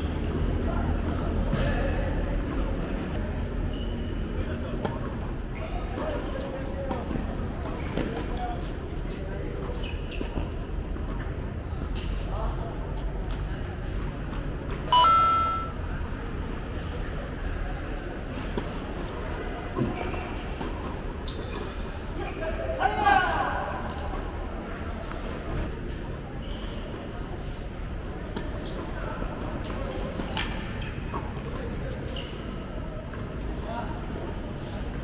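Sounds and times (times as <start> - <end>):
loud bright chime: 15.0 - 15.7.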